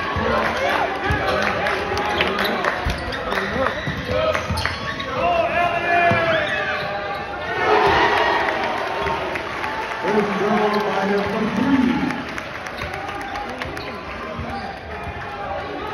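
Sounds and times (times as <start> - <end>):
crowd talking: 0.0 - 15.9.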